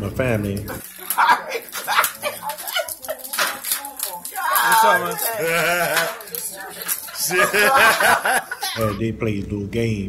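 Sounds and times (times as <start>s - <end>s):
cellophane crinkling and tearing: 0.5s - 8.4s
excited voices and laughs: 1.0s - 9.0s.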